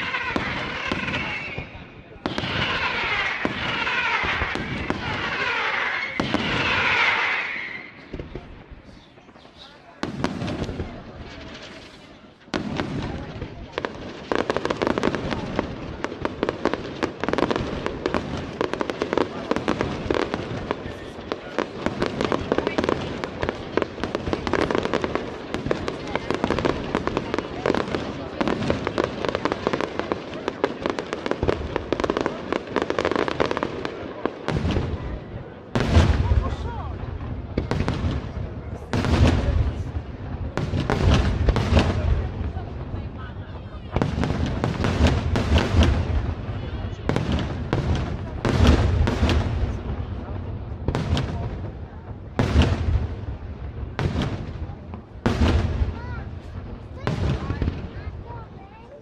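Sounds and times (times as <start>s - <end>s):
fireworks booming: 0.0s - 59.0s
fireworks crackling and popping: 0.0s - 59.0s.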